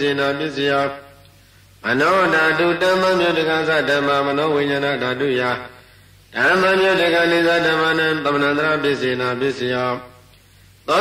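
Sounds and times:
man chanting: 0.0 - 1.2, 1.8 - 10.2
breath: 1.3 - 1.8, 5.7 - 6.3, 10.4 - 10.8.

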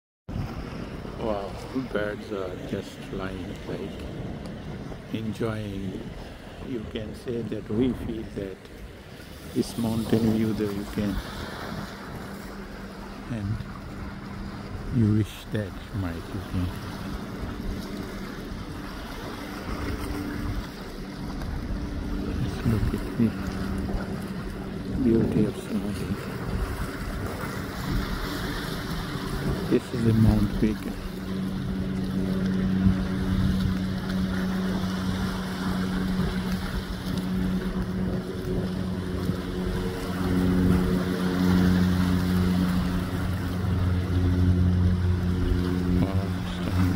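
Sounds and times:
choppy sea: 0.3 - 46.9
motorboat engine drone: 0.3 - 46.9
open water: 0.3 - 46.9
wind on microphone: 0.3 - 46.9.

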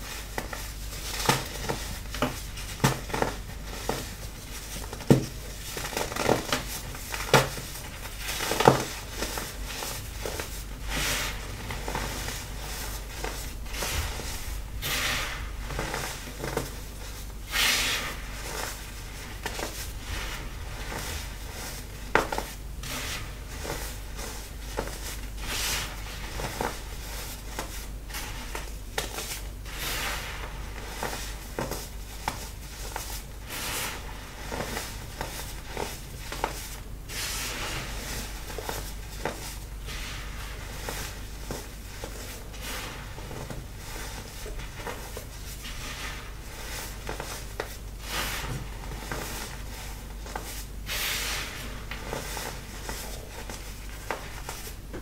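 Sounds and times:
hands kneading crunching powder: 0.0 - 55.0.

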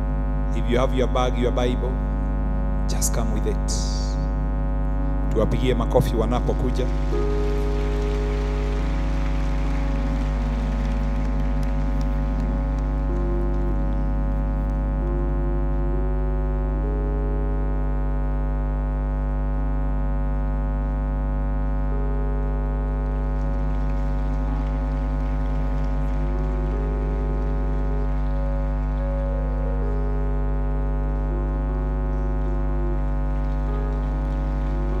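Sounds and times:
keyboard organ-like chords: 0.0 - 35.0
low bass note: 0.0 - 35.0
congregation applause: 6.0 - 15.2, 23.0 - 30.4, 32.4 - 35.0.

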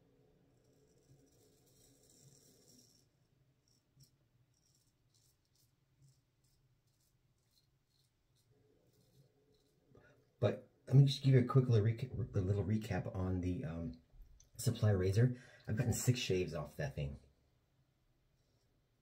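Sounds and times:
razor scraping stubble: 4.0 - 9.8.

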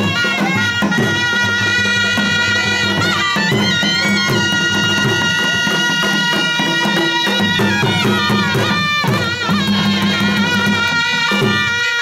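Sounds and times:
double-reed pipes playing held notes: 0.0 - 12.0
steady drum beat: 0.0 - 12.0.

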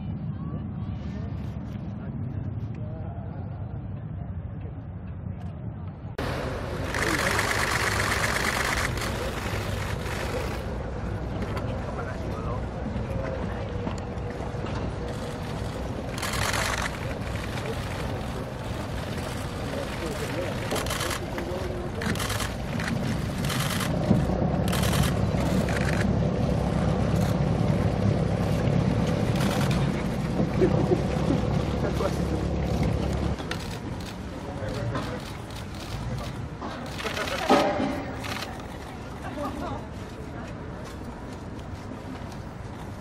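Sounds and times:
people talking: 0.0 - 6.0, 6.9 - 15.4, 16.2 - 23.8, 29.4 - 41.1
low rumble: 21.9 - 34.2.

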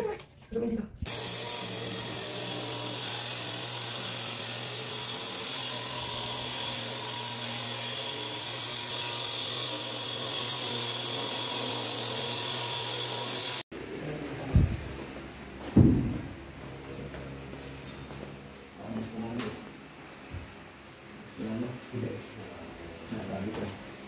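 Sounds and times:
electric grinder cutting stone: 1.1 - 13.7.

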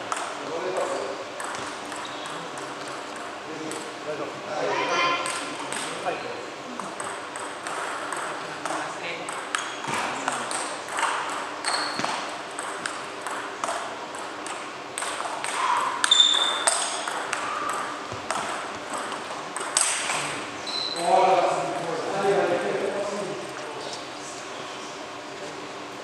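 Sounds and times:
voices in hall: 2.0 - 11.4, 19.8 - 26.0
table tennis ball clicking: 7.0 - 11.4, 12.1 - 20.0.

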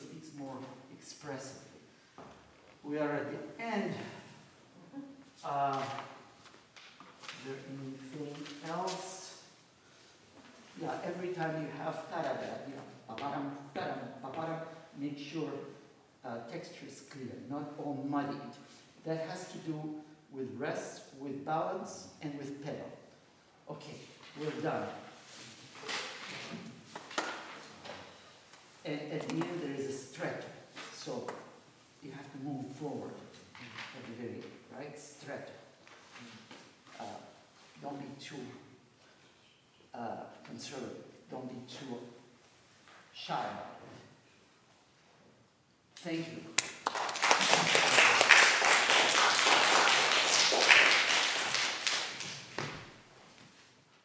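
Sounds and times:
audience applauding: 46.6 - 52.4.

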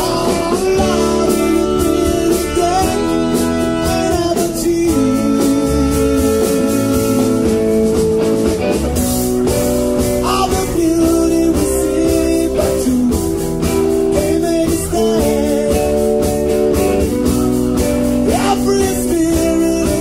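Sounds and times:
man singing: 0.0 - 8.1, 10.0 - 16.8, 17.8 - 20.0
bass guitar: 0.0 - 20.0
drums: 0.0 - 20.0
electric guitar: 0.0 - 20.0.

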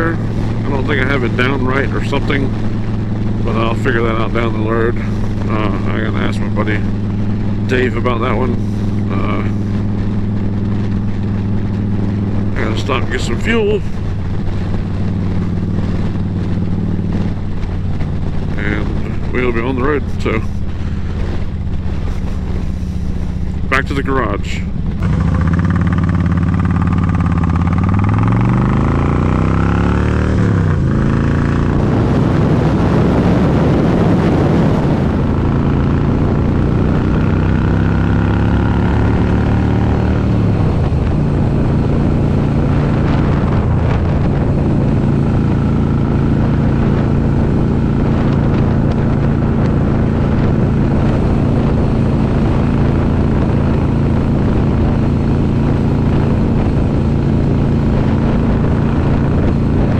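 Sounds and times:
motorcycle engine and loud exhaust: 0.0 - 59.9
wind noise: 0.0 - 59.9.

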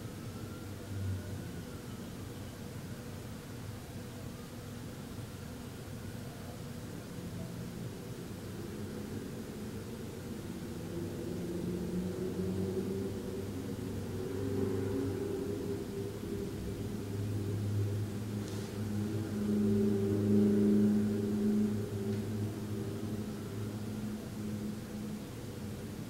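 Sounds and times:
low droning hum: 8.0 - 26.0.

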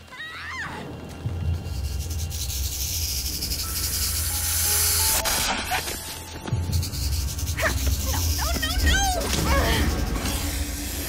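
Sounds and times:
snakes hissing: 1.4 - 11.0.

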